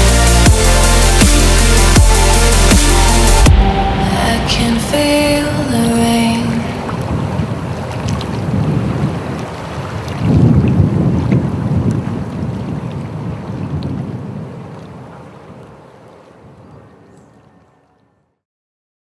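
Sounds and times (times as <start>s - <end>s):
low rushing noise: 0.0s - 9.0s.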